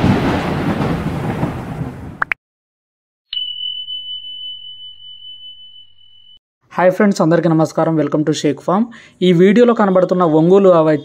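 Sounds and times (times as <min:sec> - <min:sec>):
high bell-like ding: 0:03.3 - 0:06.4.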